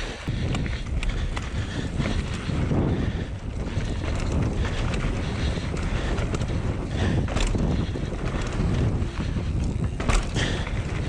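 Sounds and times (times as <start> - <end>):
bike rattles and clicks: 0.0 - 11.0
bike tyres rumbling on dirt: 0.0 - 11.0
wind buffeting microphone: 0.0 - 11.0.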